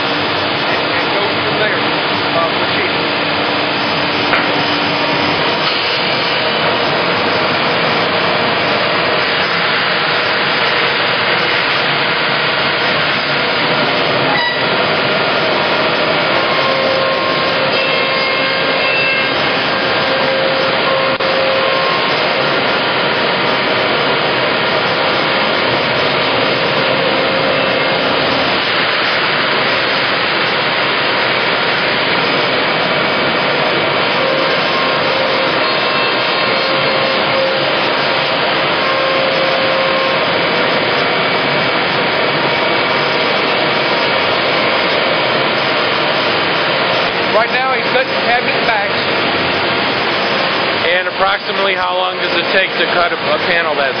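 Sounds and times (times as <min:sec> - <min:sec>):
cnc router rushing: 0:00.0 - 0:54.0
faint machine whine: 0:00.0 - 0:54.0.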